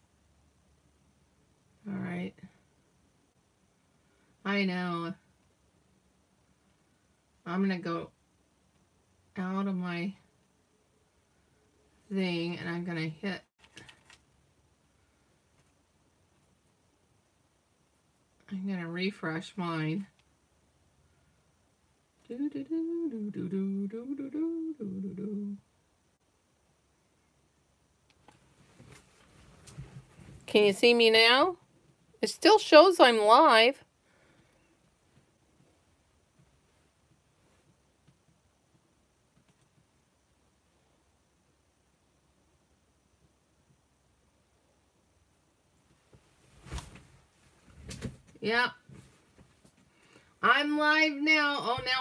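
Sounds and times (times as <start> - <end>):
woman humming: 22.2 - 25.7.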